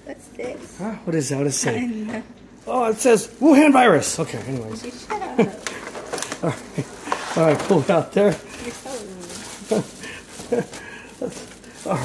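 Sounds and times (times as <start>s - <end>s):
plastic bag rustling: 1.1s - 12.0s.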